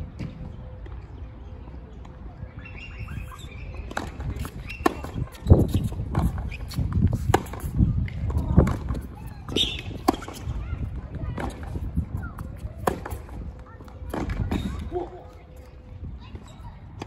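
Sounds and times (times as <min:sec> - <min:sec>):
tennis ball bouncing: 0:03.9 - 0:10.4.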